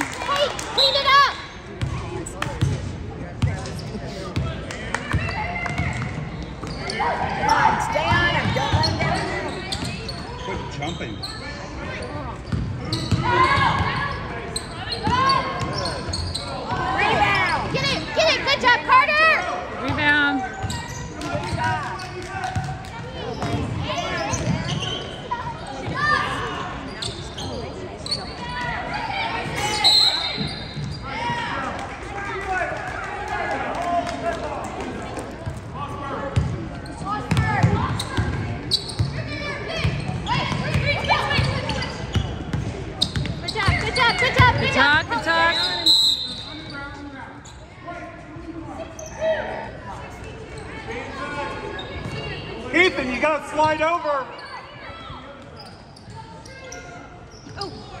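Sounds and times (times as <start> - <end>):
spectators chattering: 0.0 - 58.0.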